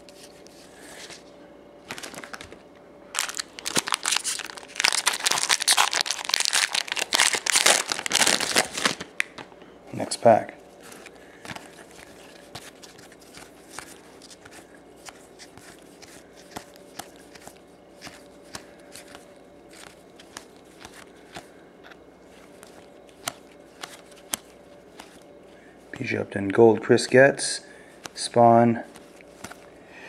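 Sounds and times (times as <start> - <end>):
trading cards sliding and snapping: 10.9 - 25.3, 28.9 - 29.7.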